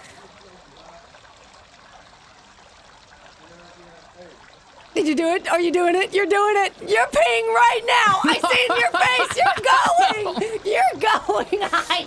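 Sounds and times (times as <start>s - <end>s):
running water: 0.0s - 12.0s.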